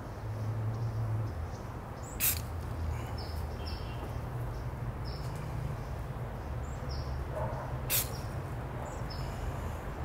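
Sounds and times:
bird chirp: 0.0 - 9.4.

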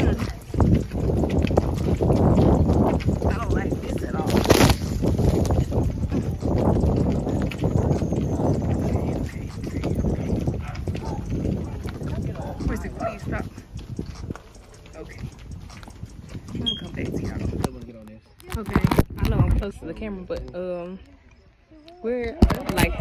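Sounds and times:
horse hooves clopping on dirt: 0.0 - 21.1.

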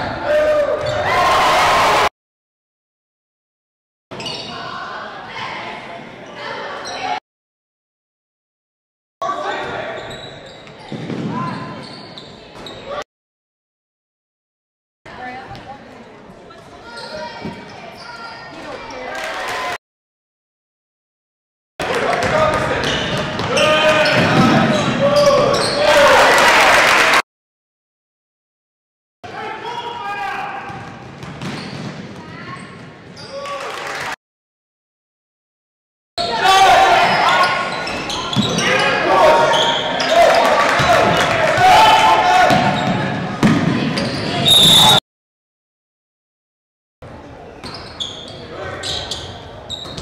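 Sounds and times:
sneakers squeaking on hardwood: 4.2 - 4.7, 9.6 - 13.0, 16.9 - 18.7, 22.6 - 25.9, 30.7 - 33.4, 36.9 - 41.0, 42.5 - 44.8, 47.6 - 50.0
crowd and player voices: 4.2 - 7.2, 9.2 - 13.0, 15.1 - 19.8, 21.8 - 26.9, 29.3 - 34.1, 36.2 - 45.0, 47.0 - 50.0
basketball bouncing: 30.7 - 32.9, 42.5 - 44.0
voices shouting: 36.2 - 43.1.

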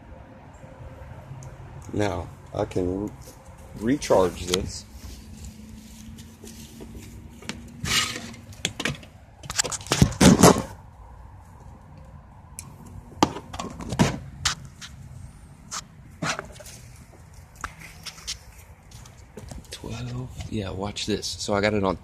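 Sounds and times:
knocks and clatters of handling: 6.2 - 10.8, 13.2 - 14.6.

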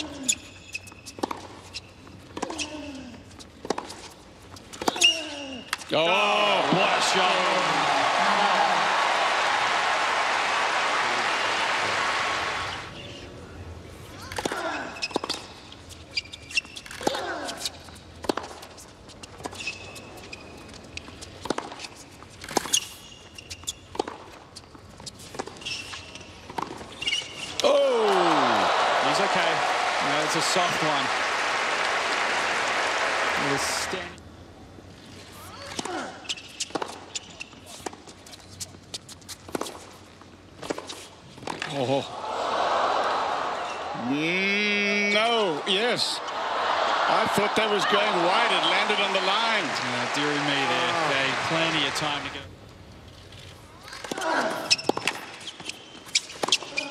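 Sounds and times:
crowd groaning: 6.2 - 12.7, 27.6 - 30.3
crowd applauding: 6.5 - 12.9, 28.0 - 34.1, 46.4 - 52.4
tennis balls bouncing on court: 18.2 - 19.6, 26.2 - 27.1.

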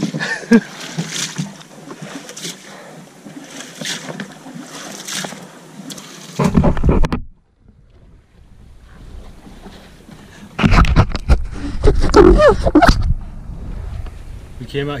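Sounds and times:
water splashing against boat: 0.0 - 15.0
wind rumble on microphone: 10.6 - 15.0.

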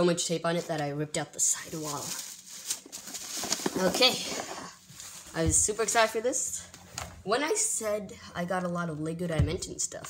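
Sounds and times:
bubble wrap and plastic crinkling: 1.4 - 6.2.

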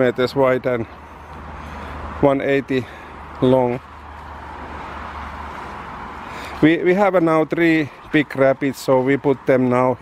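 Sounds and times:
distant road traffic: 0.0 - 10.0.

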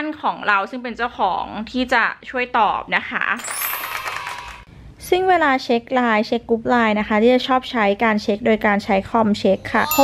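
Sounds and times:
high chiming tones: 9.6 - 10.0.

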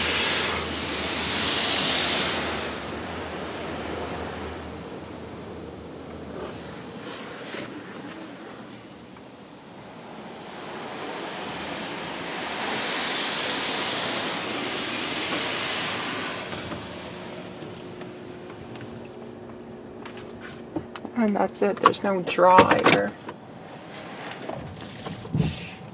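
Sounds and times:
car wash spray hitting car: 0.0 - 4.8, 10.2 - 18.8.

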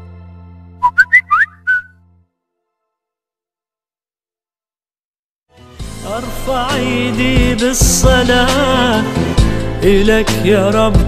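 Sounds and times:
short high whistled notes: 0.8 - 1.9.

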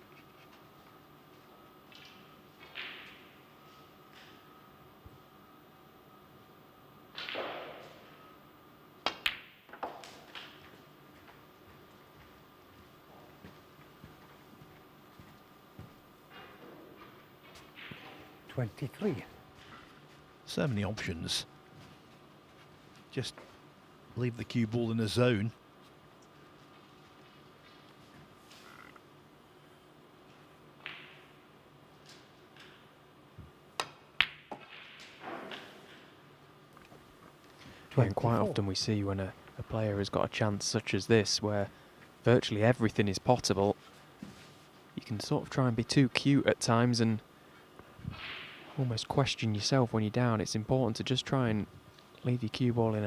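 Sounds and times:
cue tip striking ball: 9.0 - 10.6
snooker balls clicking: 9.0 - 11.4.

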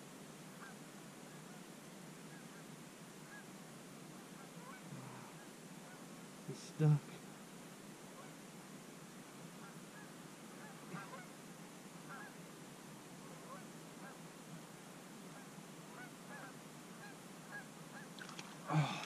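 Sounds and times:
outdoor background hiss: 0.0 - 19.0
distant geese honking: 8.2 - 8.4, 9.6 - 11.4, 12.1 - 12.4, 13.2 - 14.2, 15.3 - 18.8.

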